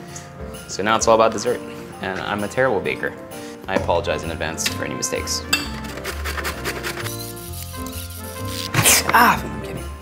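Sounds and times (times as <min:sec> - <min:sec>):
background music with sustained tones: 0:00.0 - 0:10.0
root rasping on metal grater: 0:05.9 - 0:09.0.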